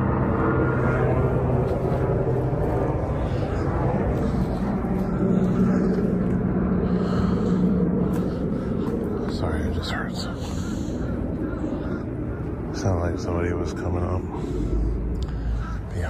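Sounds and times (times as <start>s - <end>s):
engine drone: 0.0s - 16.0s.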